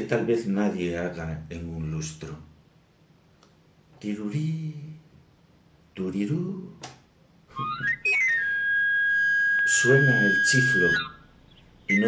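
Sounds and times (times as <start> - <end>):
panpipe rising glissando: 7.6 - 11.3.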